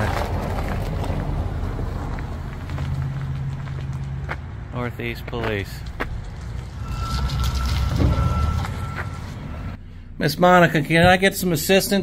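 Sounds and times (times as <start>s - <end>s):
vehicle engine rumble: 0.0s - 11.2s
thin high tone: 6.7s - 9.8s.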